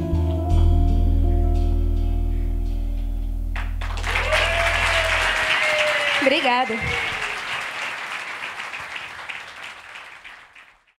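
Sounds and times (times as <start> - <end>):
audience applauding: 3.6 - 11.0.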